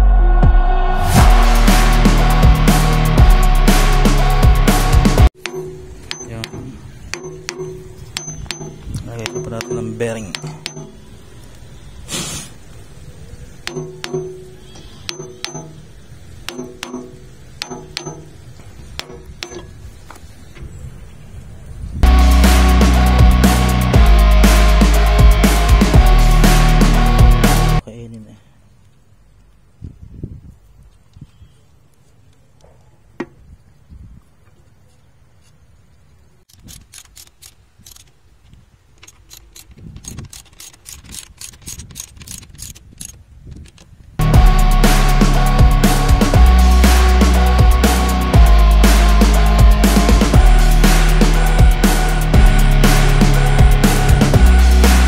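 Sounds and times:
loud rock music: 0.0 - 5.3, 22.0 - 27.8, 44.2 - 55.0
wrench clinking on metal: 5.4 - 11.1.

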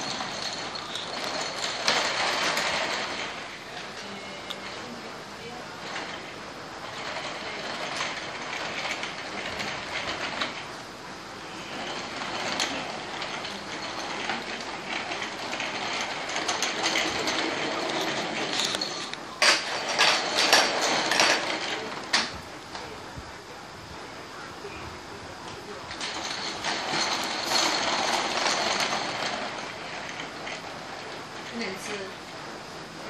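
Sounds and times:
plastic wheels rattling on wood: 0.0 - 23.0, 25.5 - 33.0.

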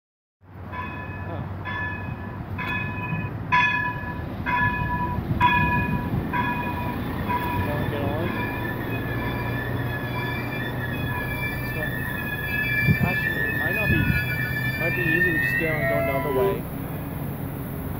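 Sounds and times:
diesel railcar rumble: 0.4 - 17.9
bell ringing: 0.7 - 16.6
high brake squeal: 6.6 - 16.7.

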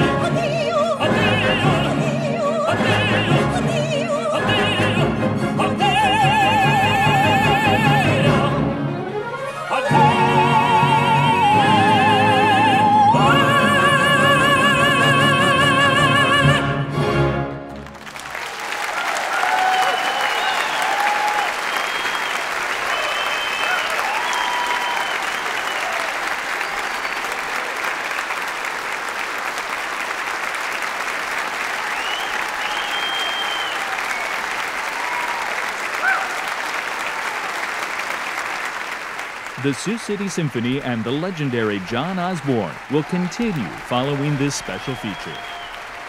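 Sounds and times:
singers and orchestra held note: 0.0 - 18.0, 39.5 - 46.0
audience applauding: 17.7 - 46.0
audience cheering: 17.8 - 46.0.

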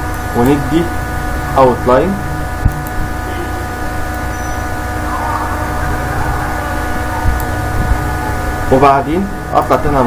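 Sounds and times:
constant tones: 0.0 - 10.0
steady hum and hiss: 0.0 - 10.0.

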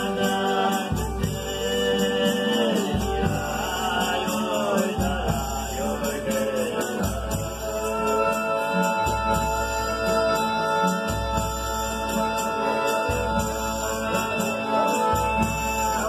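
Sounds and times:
accordion: 0.0 - 16.0
guitar: 0.0 - 16.0
singers chanting together: 0.0 - 16.0.

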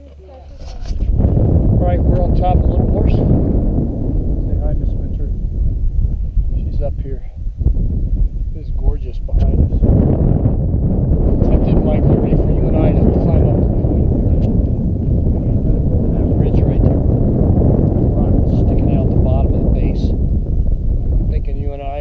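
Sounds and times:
faint voices: 0.0 - 1.0
wind buffeting microphone: 0.0 - 22.0.

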